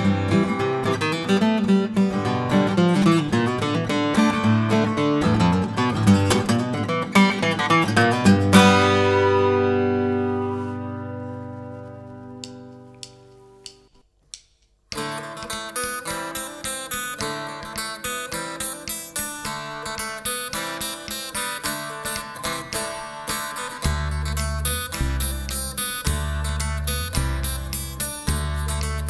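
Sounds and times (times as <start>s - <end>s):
acoustic guitar rhythm: 0.0s - 29.0s.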